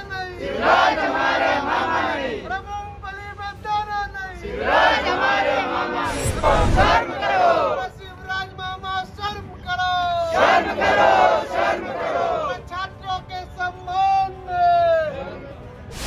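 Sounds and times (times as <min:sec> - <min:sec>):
crowd shouting in unison: 0:00.4 - 0:02.5, 0:04.5 - 0:07.8, 0:10.3 - 0:12.5.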